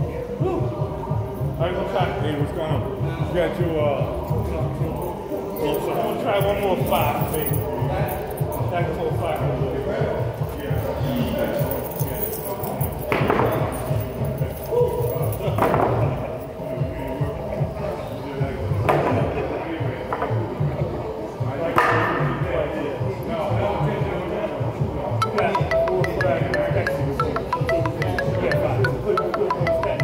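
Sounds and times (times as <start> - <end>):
background music with beat: 25.2 - 30.0.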